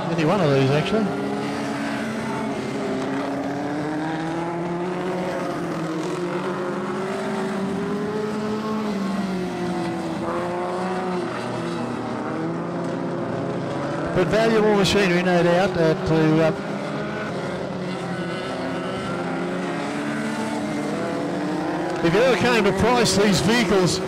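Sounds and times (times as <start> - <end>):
race car engines droning: 0.0 - 24.0.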